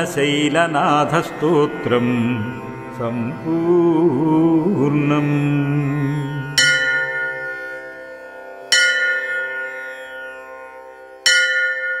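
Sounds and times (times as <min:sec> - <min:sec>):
bell ringing: 0:08.7 - 0:10.2, 0:11.2 - 0:12.0.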